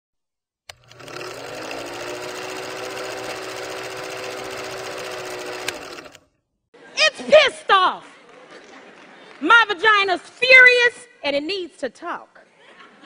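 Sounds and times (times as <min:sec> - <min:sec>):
film projector clattering: 0:00.7 - 0:06.2.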